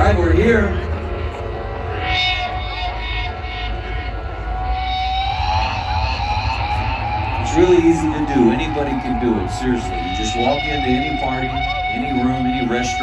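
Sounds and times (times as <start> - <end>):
crowd noise: 0.0 - 13.0
siren-like tone from speakers: 0.0 - 13.0.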